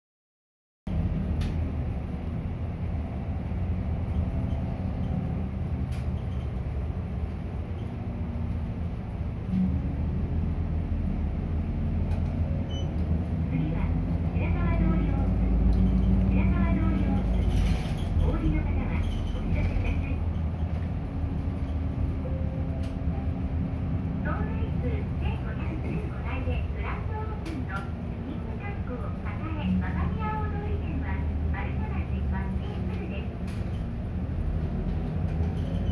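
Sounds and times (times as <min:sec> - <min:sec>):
bus engine droning: 0:00.9 - 0:35.9.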